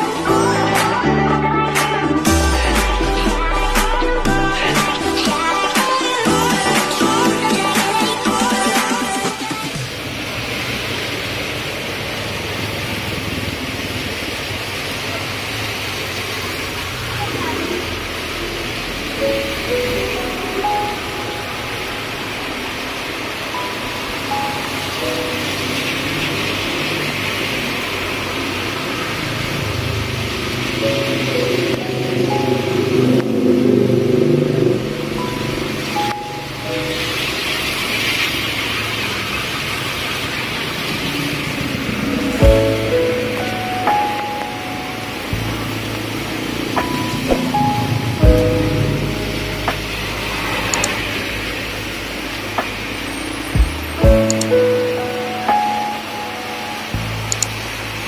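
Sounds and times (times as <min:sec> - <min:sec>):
background music with melody: 0:00.0 - 0:09.9, 0:19.0 - 0:27.4, 0:30.6 - 0:38.3, 0:42.2 - 0:58.0
vehicles driving on wet street: 0:00.0 - 0:58.0
heavy rain on paved road: 0:02.3 - 0:58.0.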